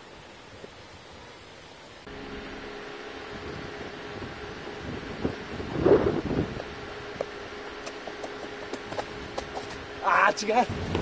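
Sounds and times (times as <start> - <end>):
steady low hum: 0.0 - 11.0
wind on microphone: 3.3 - 7.2, 10.7 - 11.0
footfalls on pavement: 7.2 - 9.8.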